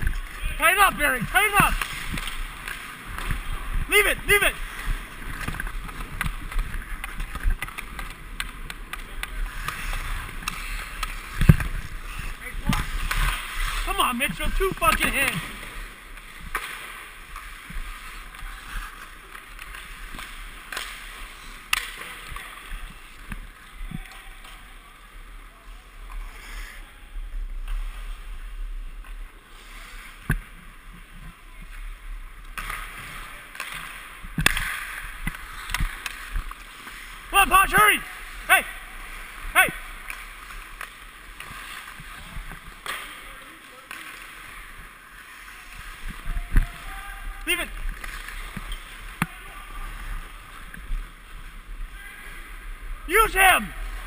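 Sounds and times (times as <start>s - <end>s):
skate blades scraping ice: 0.0s - 54.0s.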